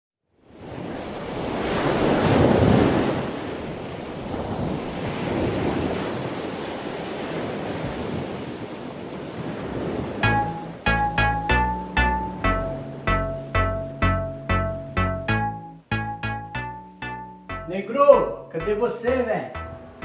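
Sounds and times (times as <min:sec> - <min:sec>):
wind: 0:00.3 - 0:10.7
waves: 0:00.5 - 0:14.6.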